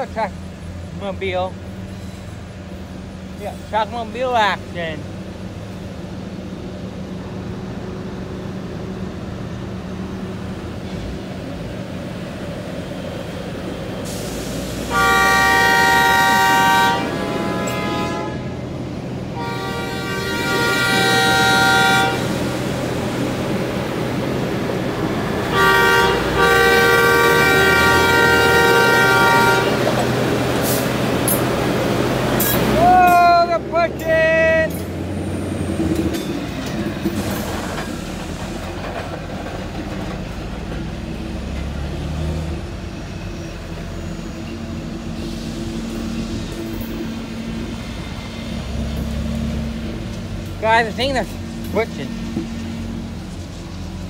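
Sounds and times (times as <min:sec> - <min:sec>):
air horn blasts: 0:14.9 - 0:18.6, 0:19.4 - 0:22.4, 0:25.5 - 0:29.8.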